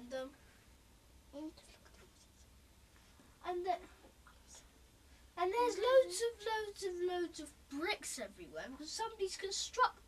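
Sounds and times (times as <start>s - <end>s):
steady low hum: 0.0s - 10.0s
faint scratchy rustles: 1.4s - 6.4s.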